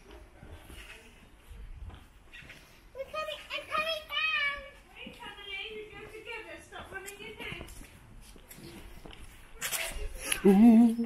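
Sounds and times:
footsteps on slippery ground: 0:00.0 - 0:10.6.

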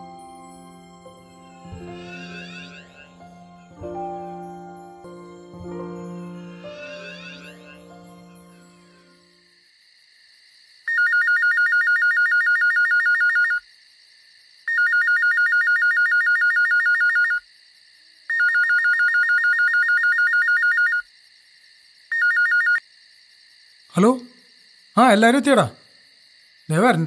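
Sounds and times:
phone ringing electronic trill: 0:01.6 - 0:03.2, 0:06.5 - 0:09.2, 0:10.9 - 0:13.6, 0:14.7 - 0:17.4, 0:22.2 - 0:22.8.

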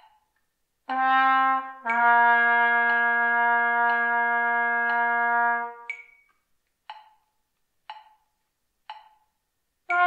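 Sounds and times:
metronome ticking: 0:00.0 - 0:10.0.

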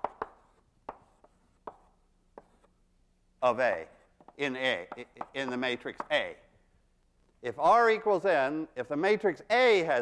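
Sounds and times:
chalk tapping on blackboard: 0:00.0 - 0:02.8, 0:04.2 - 0:06.3.

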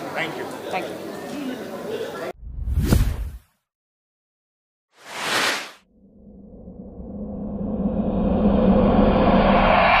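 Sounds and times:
whoosh rushing noise: 0:02.4 - 0:03.4.

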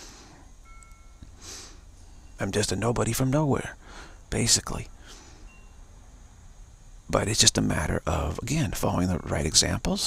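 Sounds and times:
faint steady hiss: 0:00.0 - 0:10.0
faint high-pitched tone: 0:00.3 - 0:06.1.

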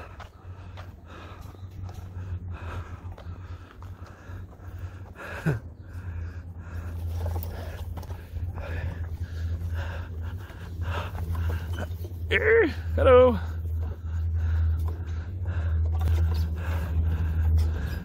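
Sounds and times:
heavy breathing: 0:00.0 - 0:18.0
steady low rumble: 0:00.0 - 0:18.0.

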